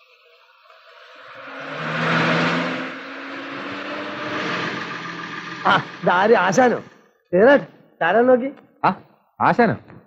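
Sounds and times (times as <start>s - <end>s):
lorry engine running: 0.6s - 7.0s.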